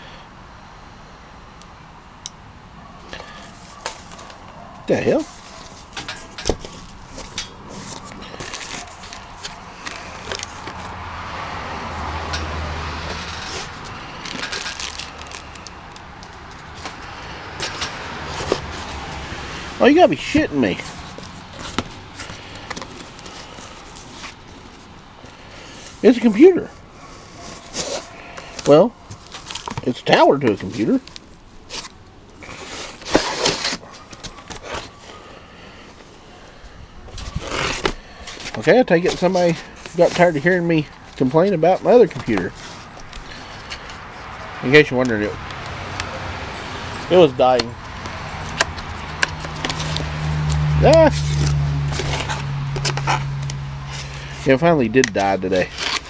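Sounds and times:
cardboard boxes scraping and rustling: 5.2 - 10.9, 11.7 - 15.6, 16.7 - 24.9, 27.0 - 35.2, 37.1 - 44.5, 46.4 - 53.2, 53.9 - 56.0
cardboard box being opened: 5.3 - 11.8, 12.6 - 15.7, 31.0 - 35.0, 37.1 - 40.4.

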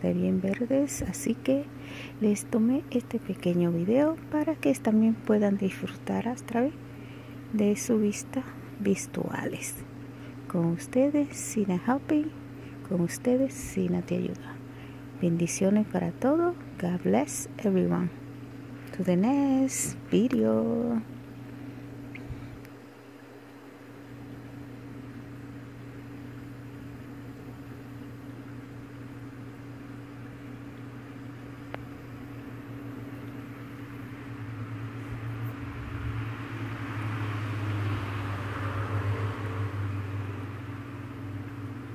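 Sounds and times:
low electric machine hum: 0.0 - 41.9.

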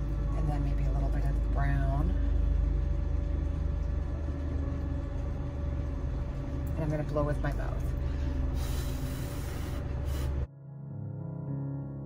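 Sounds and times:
mouth blowing air: 8.1 - 10.5
soft piano music: 10.1 - 12.0.

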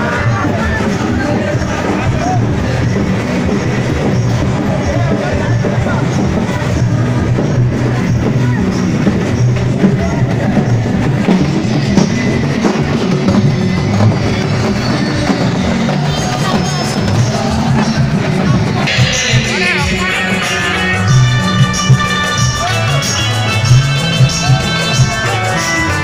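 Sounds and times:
loud band music with drums: 0.0 - 26.0.

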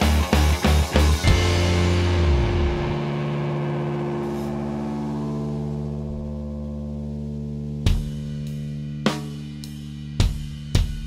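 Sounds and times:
synthesizer drone: 1.2 - 8.5.

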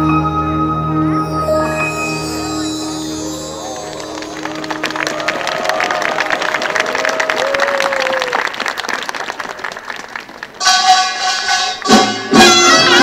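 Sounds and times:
traditional music: 0.0 - 6.9, 10.6 - 13.0
audience applauding: 2.7 - 12.0.

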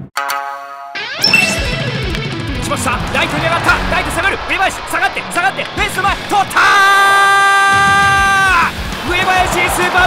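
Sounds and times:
sports announcer shouting: 2.7 - 10.0.

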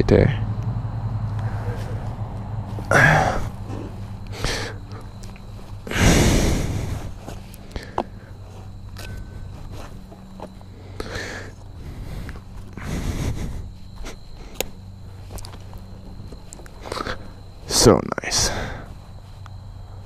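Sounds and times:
steady low hum: 0.0 - 20.0
man breathing heavily: 1.2 - 17.7, 18.3 - 20.0
loud exhales: 2.9 - 5.1, 5.9 - 7.2
light clicks and rustles: 14.0 - 17.3.

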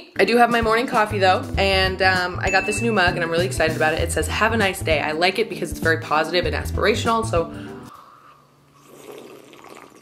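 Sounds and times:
person slurping coffee: 7.9 - 10.0.

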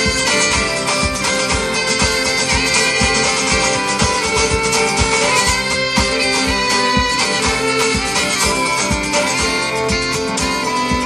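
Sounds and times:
fiddle lead: 0.0 - 11.0
kick drum beat: 0.0 - 11.0
strummed guitar: 0.0 - 11.0.

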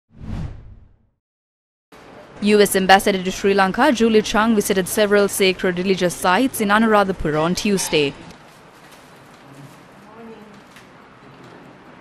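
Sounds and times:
whoosh with low thump: 0.1 - 1.0.

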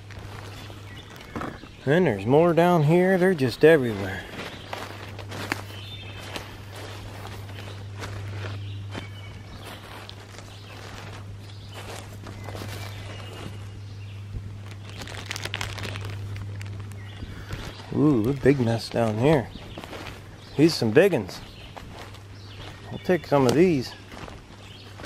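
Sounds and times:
footsteps crunching dry leaves: 0.0 - 25.0
steady low hum: 0.0 - 25.0.

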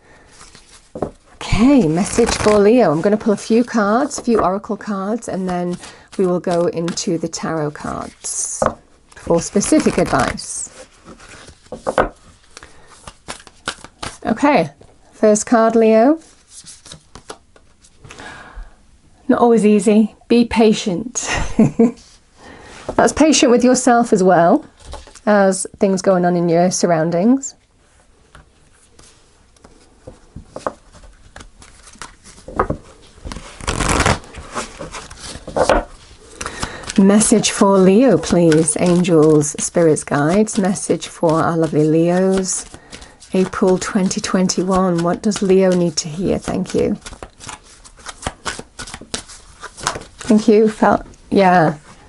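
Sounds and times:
cards being shuffled: 0.3 - 14.4, 16.3 - 18.0, 28.3 - 50.9.

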